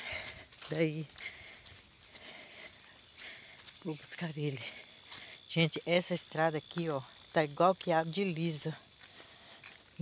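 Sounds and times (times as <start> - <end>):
insects chorus: 0.0 - 10.0
person speaking: 3.8 - 4.8.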